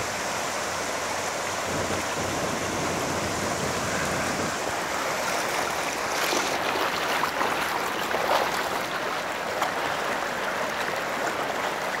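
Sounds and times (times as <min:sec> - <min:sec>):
flood water rushing: 0:00.0 - 0:12.0.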